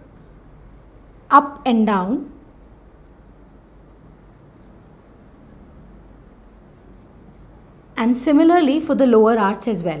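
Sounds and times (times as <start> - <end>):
toothbrush rubbing on plastic teeth: 0.0 - 9.0.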